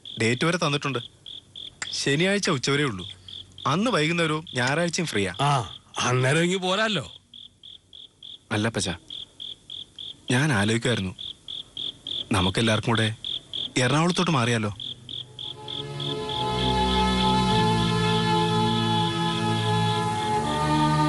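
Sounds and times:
cricket chirping: 0.0 - 18.2
men talking: 1.9 - 7.2, 10.3 - 11.2, 12.2 - 14.8
soft background music: 13.8 - 21.0.

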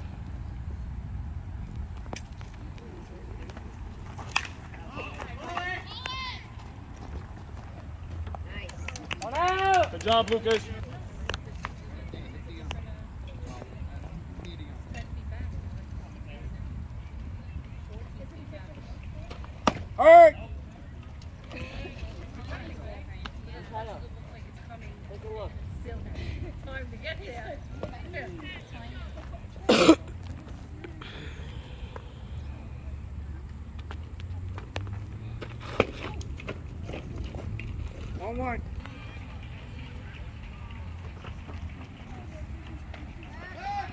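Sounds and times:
distant voices calling and chattering: 0.0 - 43.9
low outdoor rumble: 0.0 - 43.9.

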